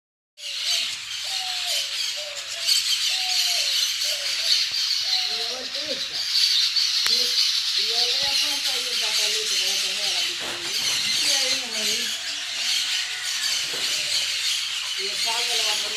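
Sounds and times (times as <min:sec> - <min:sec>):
parakeets chattering and screeching: 0:00.4 - 0:15.9.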